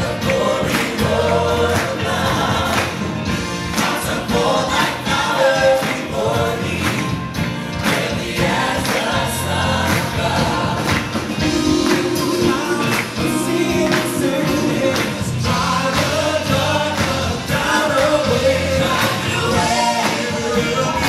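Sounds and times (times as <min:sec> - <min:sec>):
drums: 0:00.0 - 0:21.0
group singing into microphones: 0:00.0 - 0:21.0.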